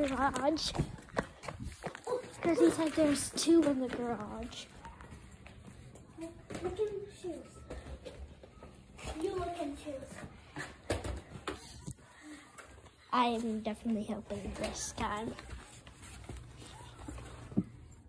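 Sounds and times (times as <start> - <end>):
faint children's voices: 0.0 - 18.0
knocks and rattles of objects handled: 10.2 - 11.9.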